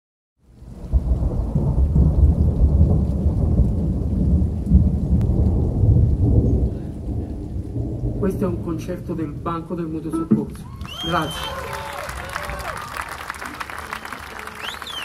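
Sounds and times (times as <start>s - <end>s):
deep rolling rumble: 0.5s - 11.0s.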